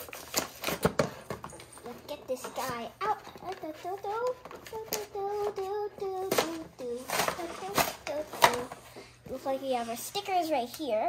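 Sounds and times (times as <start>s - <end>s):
child singing wordless tune: 1.9s - 11.0s.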